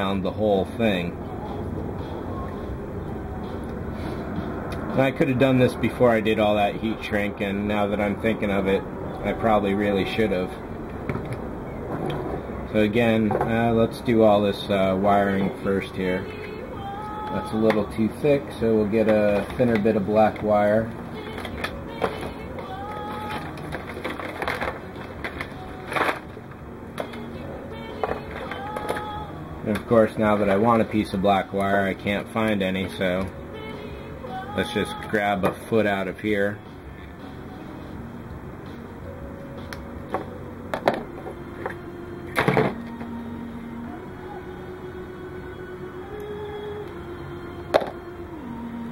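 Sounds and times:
faint background music: 0:00.0 - 0:48.9
low background rumble: 0:00.0 - 0:48.9.

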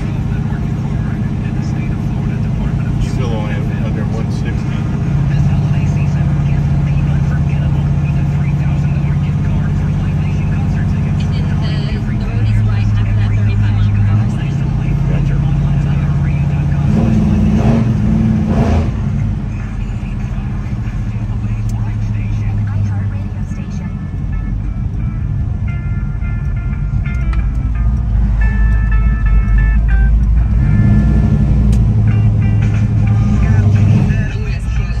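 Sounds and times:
car engine running: 0:00.0 - 0:35.0
music with steady bass line: 0:00.0 - 0:35.0
road rumble: 0:00.0 - 0:35.0.

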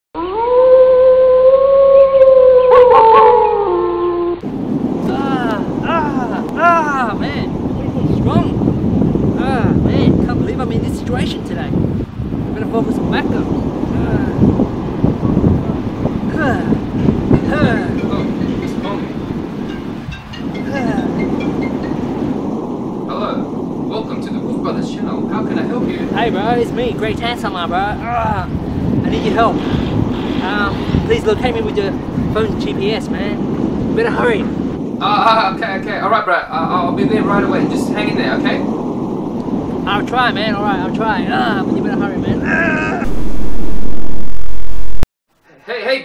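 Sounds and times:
wolf howling: 0:00.2 - 0:04.4
wind buffeting microphone: 0:00.2 - 0:45.0.

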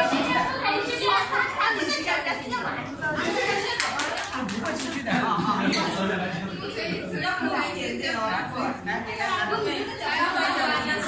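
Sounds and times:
people's voices: 0:00.0 - 0:11.0
quick hand claps: 0:03.7 - 0:05.2.

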